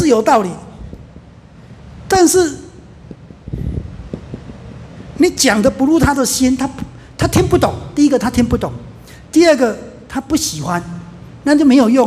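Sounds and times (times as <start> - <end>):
microphone handling noise: 3.0 - 5.0.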